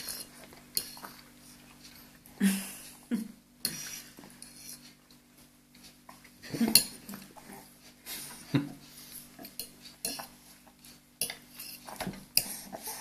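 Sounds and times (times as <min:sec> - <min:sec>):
fork clinking and scraping on plate: 0:09.4 - 0:10.4.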